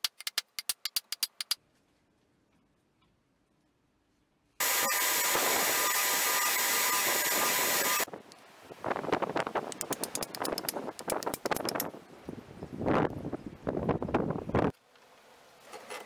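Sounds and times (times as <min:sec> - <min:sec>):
knocks and handling clicks: 0:00.0 - 0:01.6
belt grinder sanding wood: 0:04.6 - 0:08.1
wind on microphone: 0:08.7 - 0:14.7.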